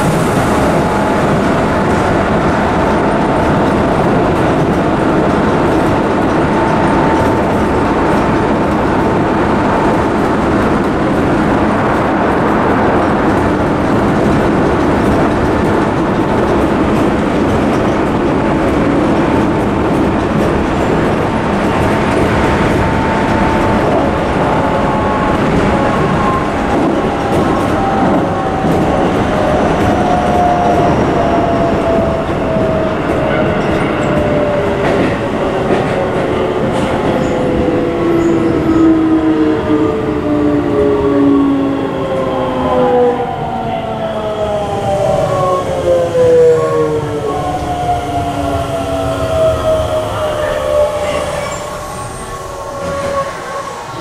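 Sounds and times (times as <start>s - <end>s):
wheels running on rail: 0.0s - 54.0s.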